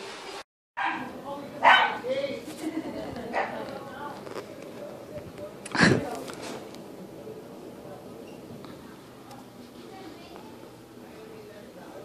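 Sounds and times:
puppy yipping: 0.8 - 2.0.

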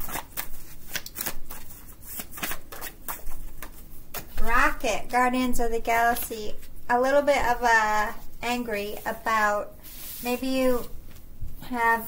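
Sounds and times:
cards being shuffled: 0.0 - 4.6.

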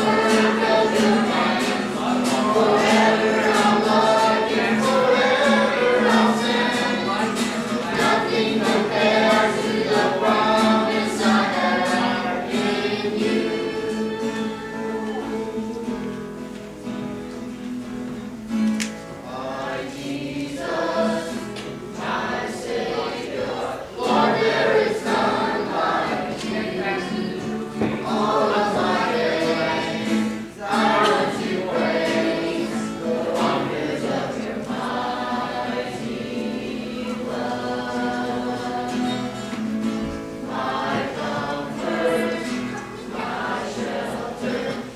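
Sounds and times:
youth choir singing: 0.0 - 17.0, 19.2 - 44.9.

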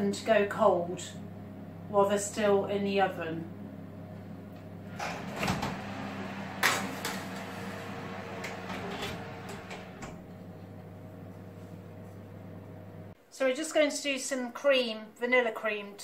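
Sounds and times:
steady low hum: 0.0 - 13.2
oven door opening and shutting: 4.6 - 11.0.

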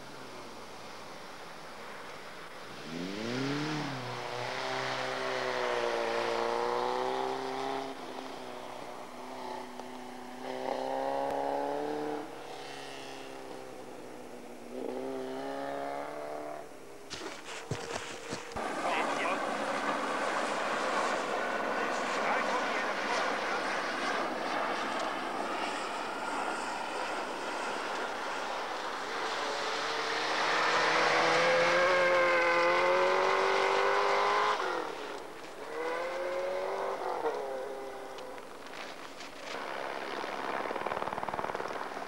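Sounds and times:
car engine at high revs: 0.0 - 42.0.

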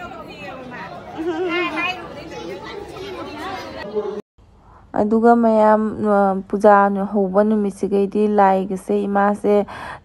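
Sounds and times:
crowd of women and children talking: 0.0 - 4.2.

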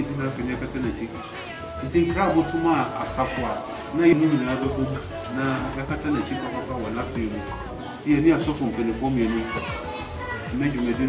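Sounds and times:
man talking: 0.0 - 1.2, 1.8 - 9.5, 10.5 - 11.0
background voices: 0.0 - 11.0.

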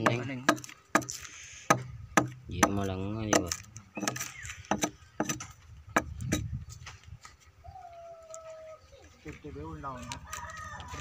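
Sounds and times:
hatchet chopping into log: 0.0 - 6.5
rooster crowing faintly: 9.9 - 11.0.

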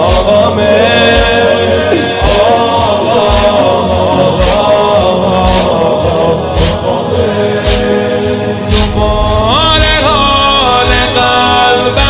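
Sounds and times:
lead voice chanting: 0.0 - 12.0
rhythmic chest-beating: 0.0 - 12.0.

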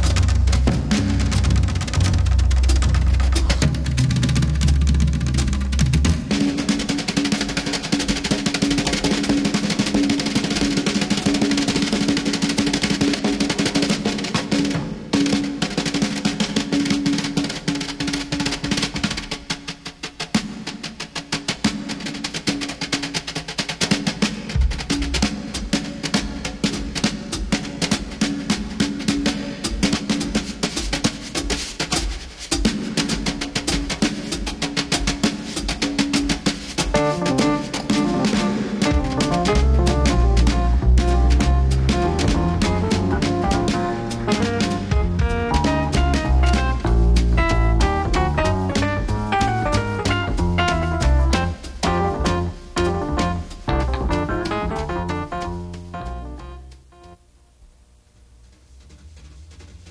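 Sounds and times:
bass drum hits: 0.0 - 6.4, 36.9 - 57.2
brushes on snare drum: 6.3 - 54.6.

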